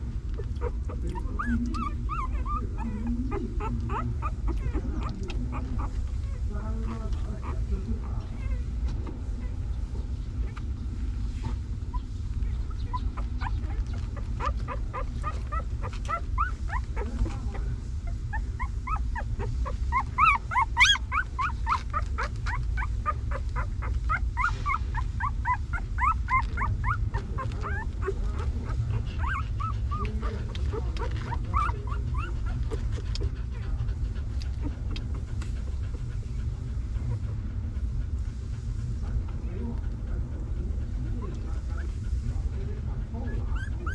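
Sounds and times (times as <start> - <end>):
steady low rumble: 0.0 - 43.9
puppy squeaking and whimpering: 0.3 - 9.6, 10.3 - 10.8, 11.4 - 36.0, 43.0 - 43.9.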